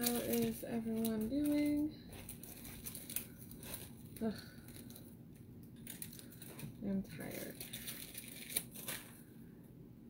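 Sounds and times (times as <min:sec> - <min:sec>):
rustling of items on a table: 0:00.0 - 0:09.4.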